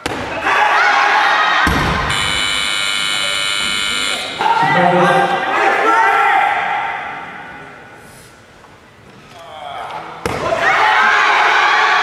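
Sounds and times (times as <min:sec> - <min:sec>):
electronic buzzer tone: 0:02.1 - 0:04.4.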